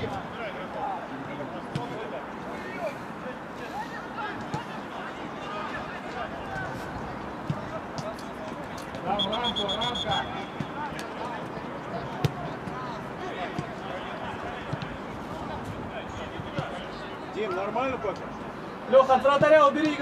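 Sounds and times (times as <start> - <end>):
players shouting: 1.8 - 18.0
referee whistle trilling: 9.1 - 10.6.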